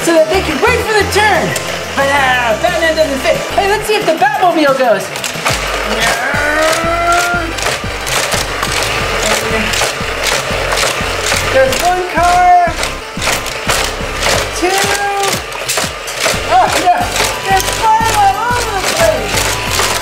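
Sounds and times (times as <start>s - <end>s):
motorized booster wheels running: 0.0s - 20.0s
toy cars clattering on plastic track: 0.6s - 20.0s.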